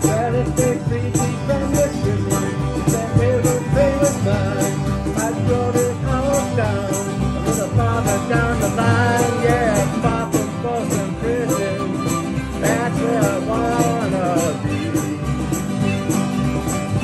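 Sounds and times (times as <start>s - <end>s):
accordion: 0.0s - 17.0s
fiddle: 0.0s - 17.0s
harmonica wailing: 0.0s - 17.0s
light percussion beat: 0.0s - 17.0s
mandolin: 0.0s - 17.0s
strummed guitar: 0.0s - 17.0s.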